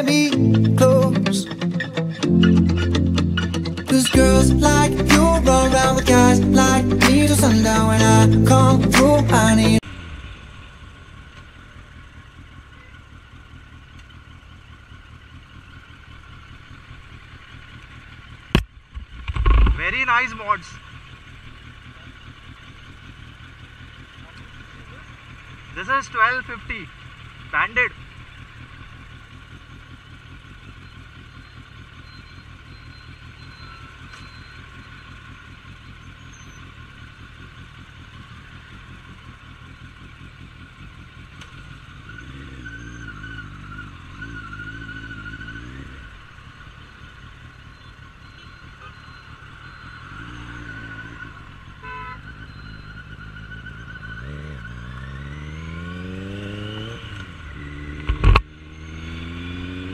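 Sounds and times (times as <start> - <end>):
motorcycle engine idling and accelerating: 0.0 - 59.9.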